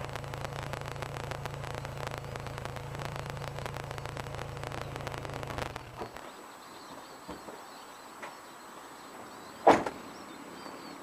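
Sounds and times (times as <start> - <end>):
faint bird chirps: 3.3 - 11.0
loud thump: 9.6 - 10.0.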